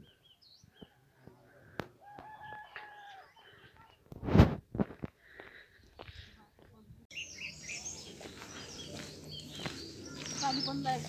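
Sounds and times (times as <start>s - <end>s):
small birds chirping: 0.0s - 1.2s, 5.2s - 11.0s
rooster crowing: 2.0s - 3.4s.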